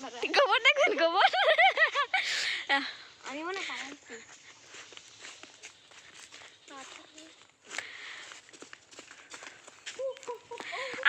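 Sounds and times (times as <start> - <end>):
footsteps on dirt path: 0.0 - 11.0.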